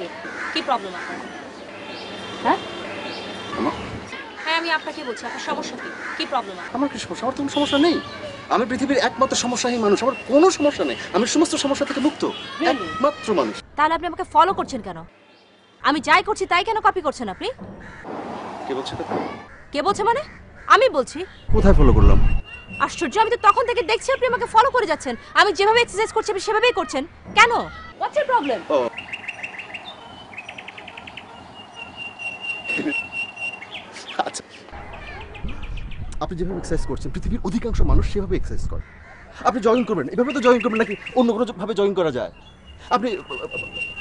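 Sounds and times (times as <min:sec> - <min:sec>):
birds chirping: 0:00.0 - 0:44.0
woman talking: 0:15.8 - 0:17.6, 0:19.7 - 0:21.3, 0:22.8 - 0:28.6
man talking: 0:21.5 - 0:22.4.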